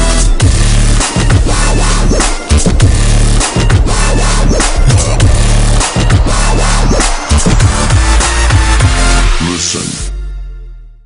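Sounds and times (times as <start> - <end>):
electronic music with pulsing bass: 0.0 - 10.1.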